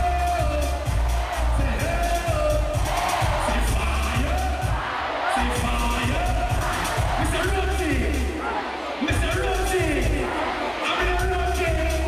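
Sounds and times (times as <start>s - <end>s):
heavy pulsing bass: 0.0s - 8.4s, 9.1s - 12.0s
audience crowd: 0.0s - 12.0s
dancehall music through concert pa: 0.0s - 12.0s.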